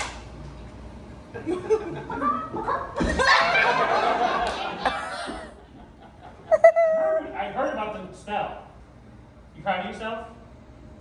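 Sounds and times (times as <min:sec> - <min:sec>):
man making high whining note: 0:06.5 - 0:07.4.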